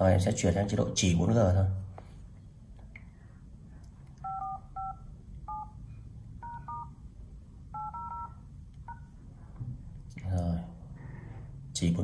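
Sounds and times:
touch-tone keypad beeps: 4.2s - 5.8s, 6.4s - 6.9s, 7.7s - 9.1s.

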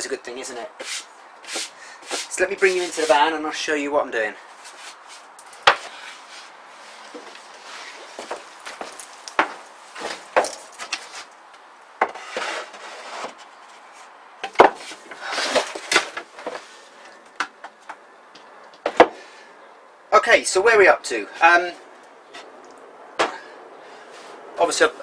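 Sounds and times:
wood scraping: 0.8s - 3.4s, 4.5s - 11.4s, 12.0s - 17.8s
wooden knocks and bumps: 5.6s - 5.9s, 8.2s - 11.1s, 14.4s - 16.6s, 18.8s - 19.2s, 23.2s - 23.4s.

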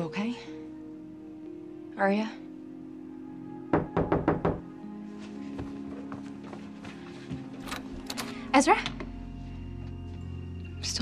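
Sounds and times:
soft background music: 0.0s - 11.0s
knocking on a door: 3.7s - 4.6s.

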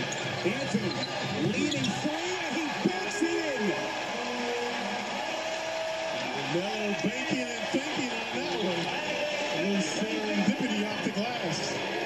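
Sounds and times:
arena crowd noise: 0.0s - 12.0s
commentator speaking: 0.4s - 3.9s, 6.5s - 11.8s.

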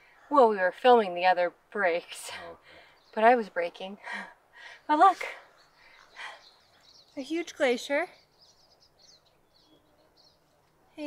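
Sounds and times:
faint birdsong chirps: 0.0s - 11.0s.

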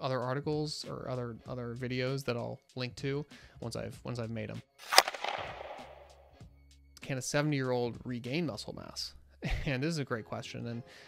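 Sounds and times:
sharp bang sound effect: 4.9s - 6.2s.

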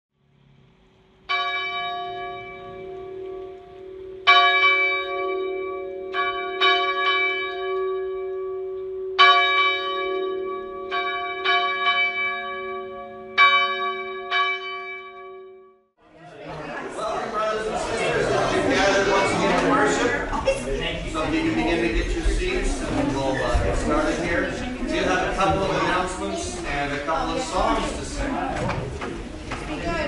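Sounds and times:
church bell ringing: 1.2s - 15.8s.

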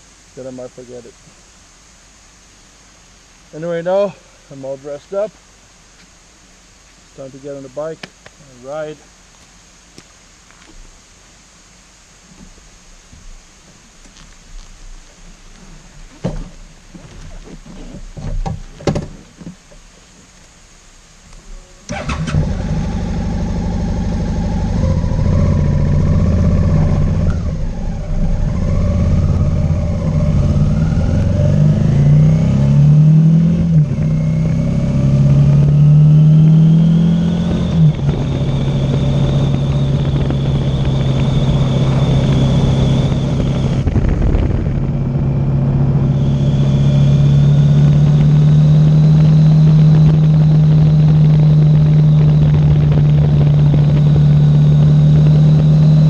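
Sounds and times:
motorcycle engine accelerating: 21.6s - 56.0s
wind rush: 37.5s - 46.6s, 49.2s - 54.6s.

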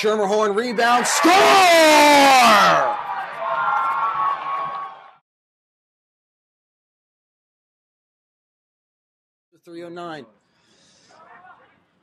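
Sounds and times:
commentator shouting: 0.0s - 3.0s
crowd cheering: 0.0s - 5.2s.

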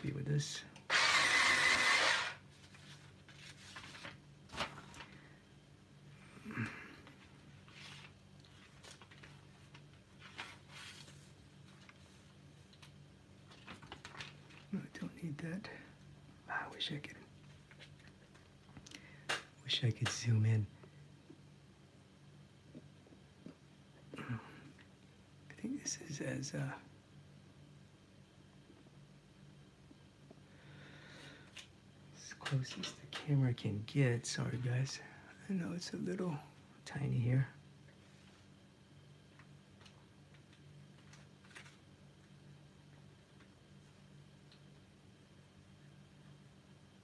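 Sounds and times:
man speaking: 0.0s - 0.7s, 14.7s - 15.9s, 19.6s - 20.8s, 25.5s - 26.8s, 32.2s - 37.6s
faint low hum: 0.0s - 47.0s
electric eraser whirring: 0.9s - 2.4s.

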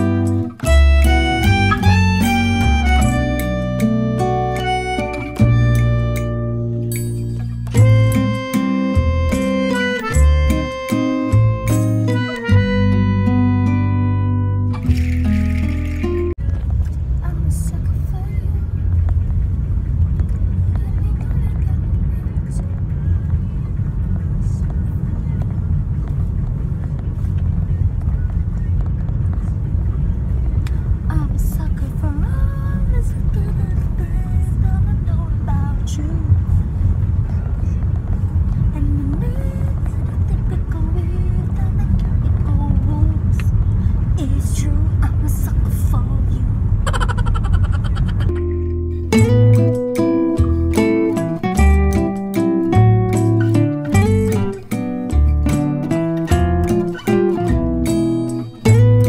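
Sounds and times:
car cabin road and engine rumble: 0.0s - 59.0s.

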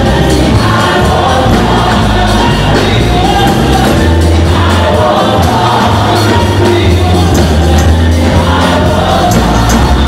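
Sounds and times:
choir singing gospel music: 0.0s - 10.0s.

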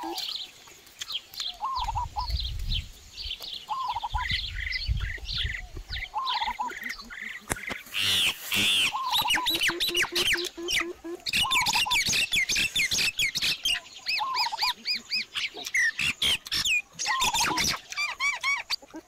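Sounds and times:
birds chirping and whistling: 0.0s - 19.0s
fast stuttering bird call: 6.2s - 18.9s.

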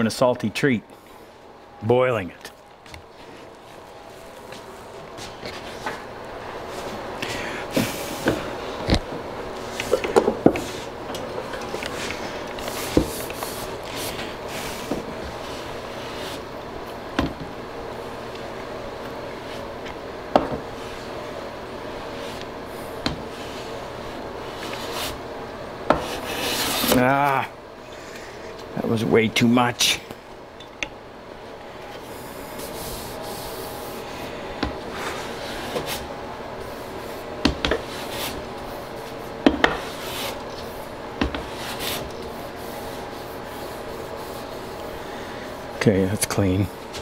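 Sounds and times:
hand plane scraping wood: 26.0s - 27.0s.

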